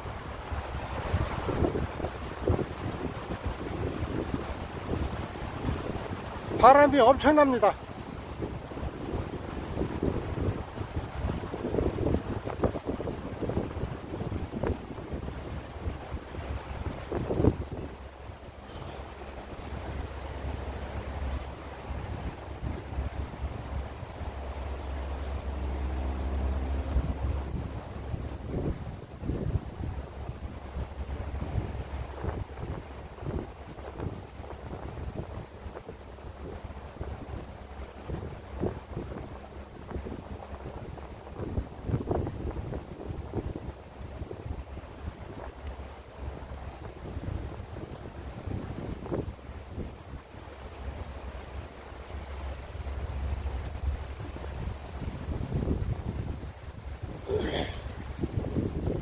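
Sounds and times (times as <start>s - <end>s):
strong wind buffeting microphone: 0.0s - 59.0s.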